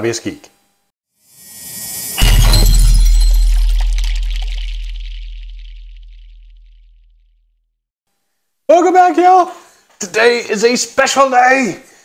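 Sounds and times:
rising whoosh: 1.4s - 6.8s
cinematic impact boom and crash: 1.4s - 7.2s.

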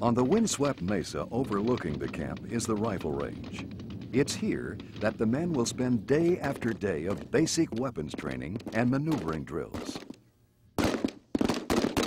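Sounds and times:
rapid rifle shots: 0.2s - 10.2s, 10.8s - 12.0s.

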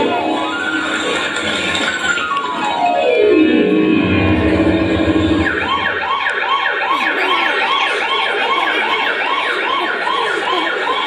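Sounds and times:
siren wail over loudspeaker: 2.1s - 11.0s
low rumble: 3.9s - 6.1s.

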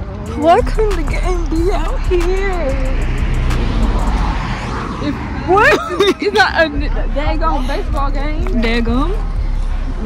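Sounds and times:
vehicle passing on road: 0.0s - 10.0s.

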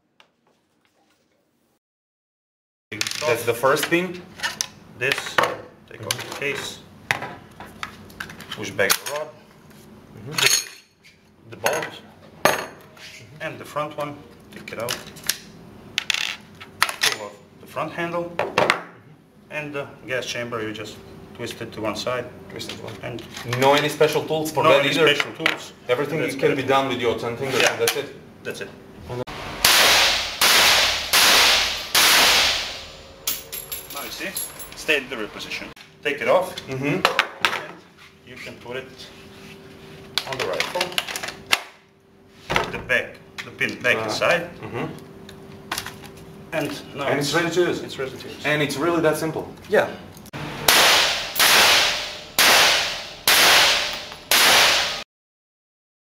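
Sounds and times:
rifle shots ringing indoors: 29.5s - 33.7s, 50.7s - 55.0s
sharp cracks: 29.6s - 33.2s, 50.7s - 55.0s.

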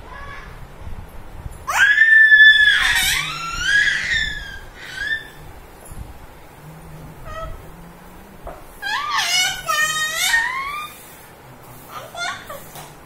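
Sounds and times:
baby squealing: 1.7s - 5.4s, 8.8s - 11.0s.

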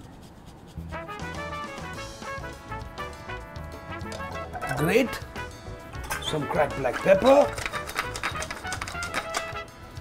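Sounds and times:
background music: 0.8s - 10.0s
pepper mill grinding: 6.6s - 9.6s.

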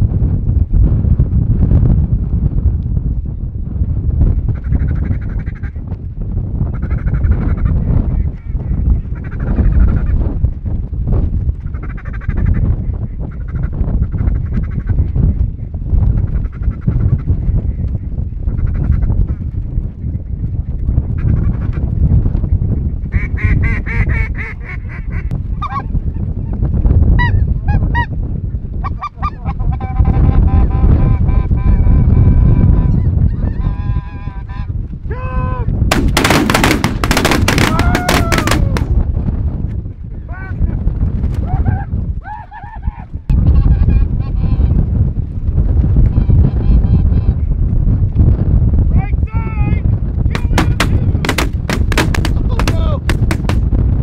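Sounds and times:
wind rumble on microphone: 0.0s - 54.0s
dense burst of noise: 35.9s - 38.9s.

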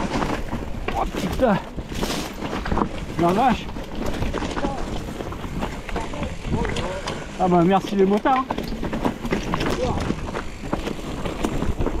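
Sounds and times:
bike rattles and clicks: 0.0s - 12.0s
bike tyres on dirt: 0.0s - 12.0s.

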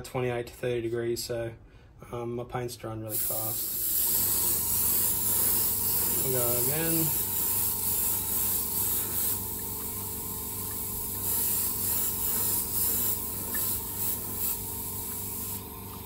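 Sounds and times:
airbrush air hiss: 3.1s - 15.7s.

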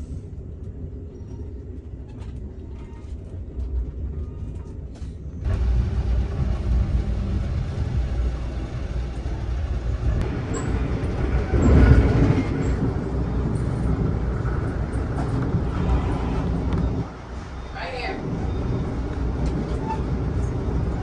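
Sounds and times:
train wheels rumbling on track: 0.0s - 21.0s.

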